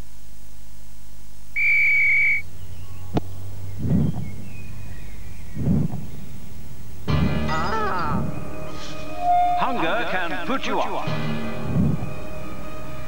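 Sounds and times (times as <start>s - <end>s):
faint low hum: 0.0s - 13.0s
referee's whistle: 1.6s - 2.4s
dull thuds: 3.1s - 4.4s, 5.5s - 7.4s.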